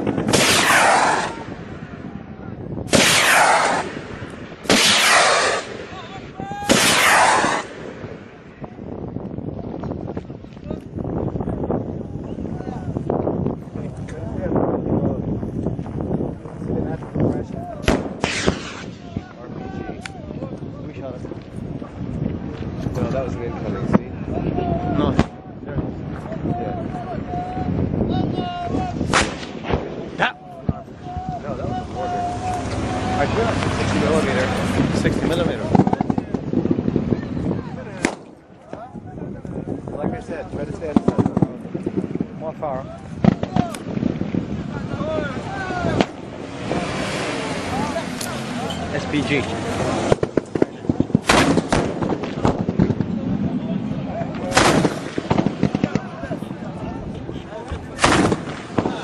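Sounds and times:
gunshots: 0:00.0 - 0:01.9, 0:02.9 - 0:06.0, 0:06.6 - 0:08.2, 0:17.8 - 0:19.1, 0:29.0 - 0:30.3, 0:38.0 - 0:38.4, 0:50.0 - 0:56.5, 0:57.8 - 0:59.0
heavy loud blasts: 0:00.0 - 0:59.0.

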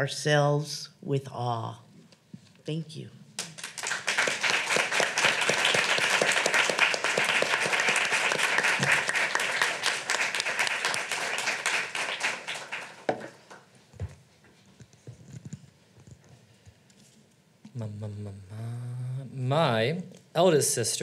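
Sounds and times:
audience applauding: 0:03.4 - 0:13.6.

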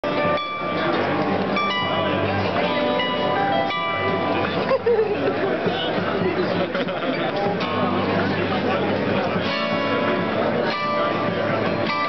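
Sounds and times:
harp guitar fingerstyle: 0:00.0 - 0:12.0.

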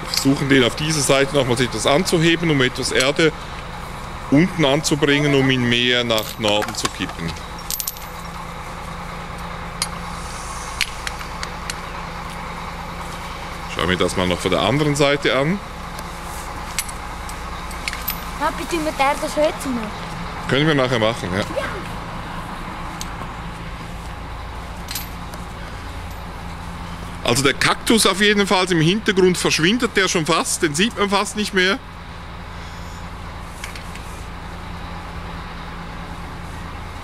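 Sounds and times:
crane engine idling: 0:00.0 - 0:37.0
low hum: 0:00.0 - 0:37.0.

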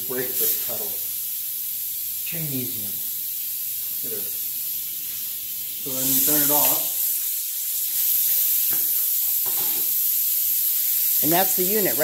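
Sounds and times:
powder coating gun hissing: 0:00.0 - 0:12.0.

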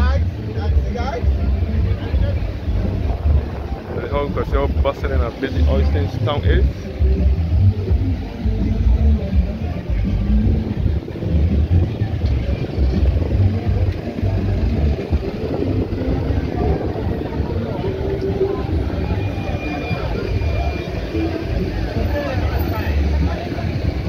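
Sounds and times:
heavy low rumble: 0:00.0 - 0:24.0
music: 0:00.0 - 0:24.0
people's voices: 0:00.0 - 0:24.0.

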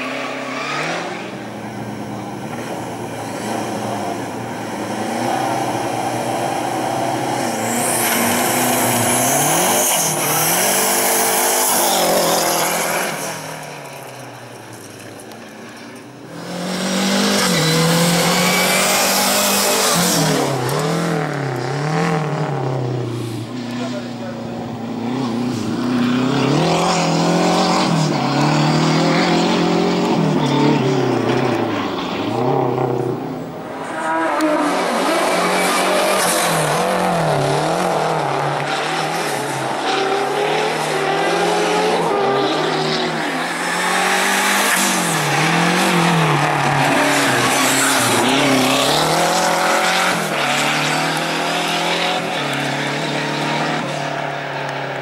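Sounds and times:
car engine revving: 0:00.0 - 0:55.0.

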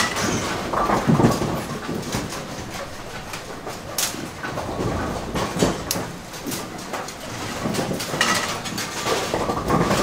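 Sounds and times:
bowling pinsetter machinery rumbling: 0:00.0 - 0:10.0
machinery clanks and knocks: 0:00.0 - 0:10.0.

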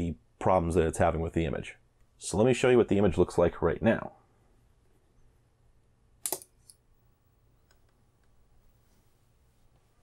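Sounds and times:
low steady room hum: 0:00.0 - 0:10.0
sharp mechanical click: 0:06.2 - 0:06.8.

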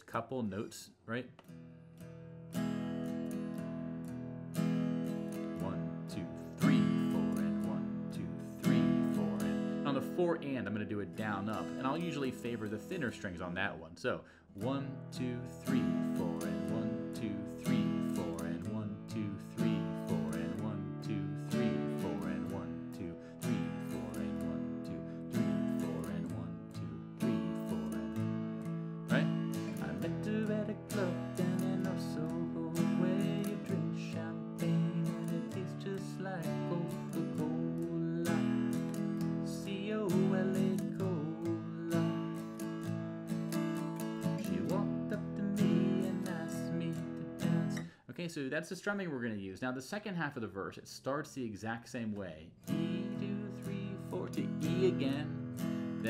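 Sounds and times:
acoustic guitar strumming: 0:01.4 - 0:48.0, 0:52.6 - 0:56.0.

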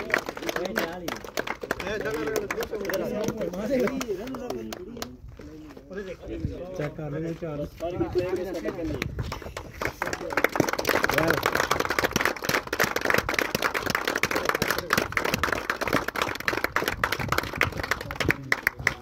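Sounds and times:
group applause: 0:00.0 - 0:05.2, 0:08.1 - 0:19.0
men talking: 0:00.0 - 0:11.7, 0:17.7 - 0:19.0.

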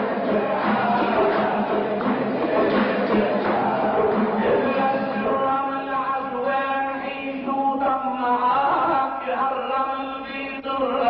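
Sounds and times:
men chanting sung poetry: 0:00.0 - 0:11.0.

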